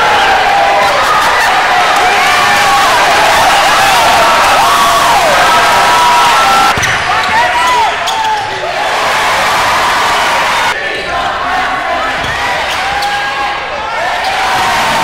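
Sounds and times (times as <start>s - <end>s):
loud crowd: 0.0s - 15.0s.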